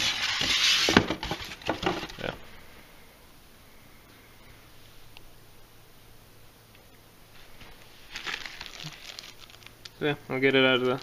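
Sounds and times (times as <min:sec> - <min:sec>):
plastic bag crinkling: 0:07.8 - 0:11.0.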